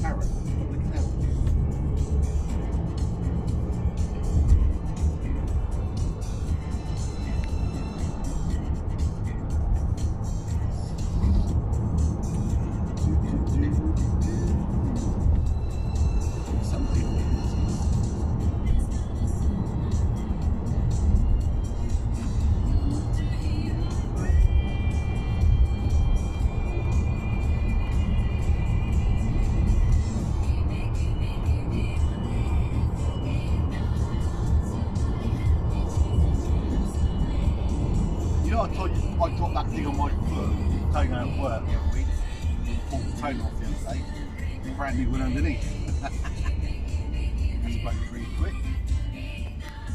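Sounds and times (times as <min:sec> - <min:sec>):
car cabin road rumble: 0:00.0 - 0:49.9
music from car radio: 0:00.0 - 0:49.9.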